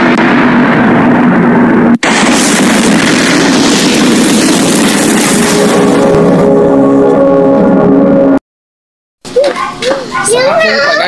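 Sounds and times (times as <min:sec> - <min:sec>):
loud rumbling explosion: 0:00.0 - 0:08.4
low hum: 0:00.0 - 0:08.4.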